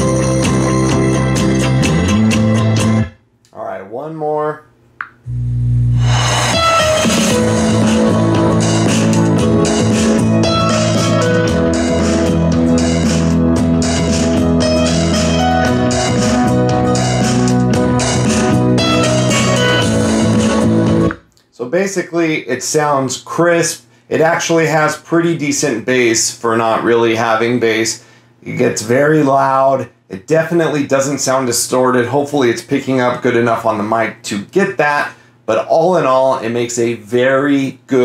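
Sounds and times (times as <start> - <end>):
guitar and bass music from speaker: 0.0 - 3.2, 5.3 - 21.2.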